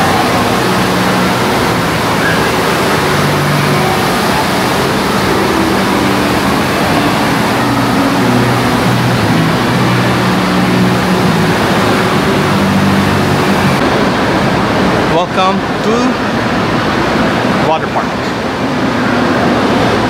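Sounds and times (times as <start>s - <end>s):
low droning tones: 0.0s - 17.6s
crowd of swimmers echoing: 0.0s - 20.0s
rushing water: 0.0s - 20.0s.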